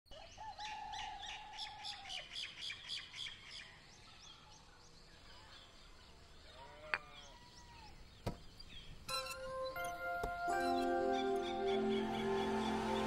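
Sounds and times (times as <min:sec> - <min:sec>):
birds chirping: 0:00.1 - 0:13.0.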